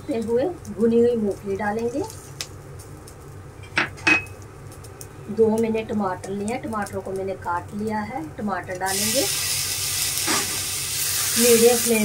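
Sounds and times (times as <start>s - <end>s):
onions frying: 0.0s - 3.6s, 4.3s - 12.0s.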